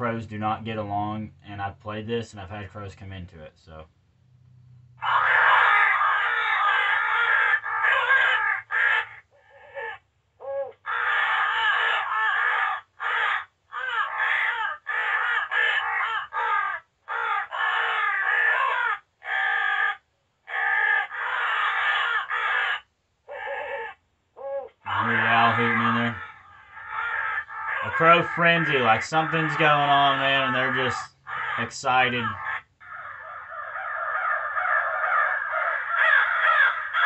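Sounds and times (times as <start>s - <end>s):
crows cawing through small speaker: 5.0s - 37.0s.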